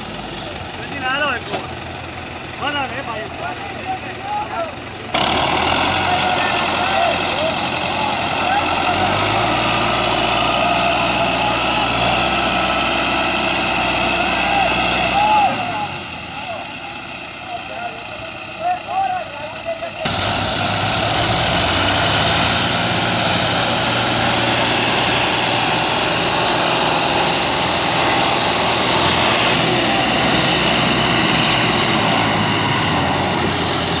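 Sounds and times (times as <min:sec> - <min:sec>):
diesel tractor engines running: 0:00.0 - 0:34.0
men's voices: 0:00.1 - 0:20.2.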